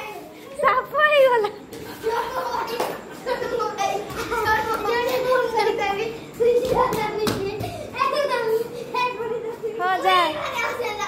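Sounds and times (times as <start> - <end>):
children shouting and laughing: 0.0 - 11.0.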